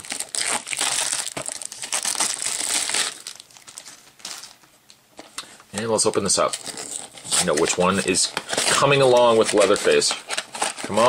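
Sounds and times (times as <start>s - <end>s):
plastic shrink wrap crinkling: 0.0s - 11.0s.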